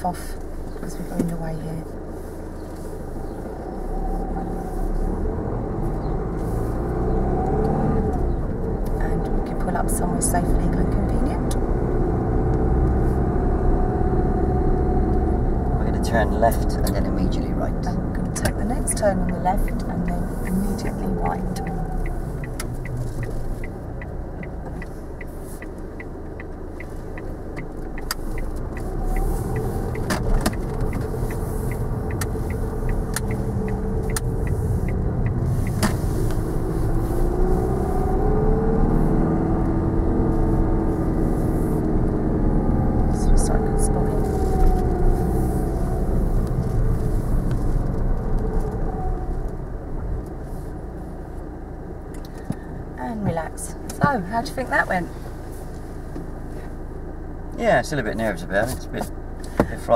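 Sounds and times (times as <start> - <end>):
car engine from inside cabin: 0.0 - 59.9
turn indicator ticking: 0.0 - 59.9.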